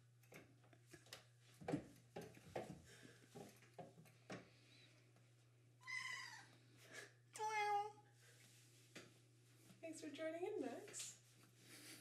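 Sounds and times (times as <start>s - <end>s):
cat meowing: 5.8s - 6.5s.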